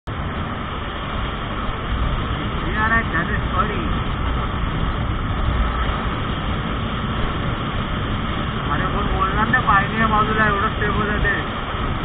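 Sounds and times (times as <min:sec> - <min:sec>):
wind rush over microphone: 0:00.1 - 0:12.0.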